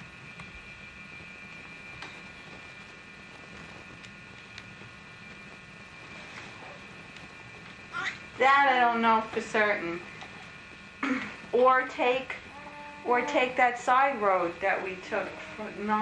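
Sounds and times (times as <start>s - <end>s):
faint high-pitched whine: 0.0s - 16.0s.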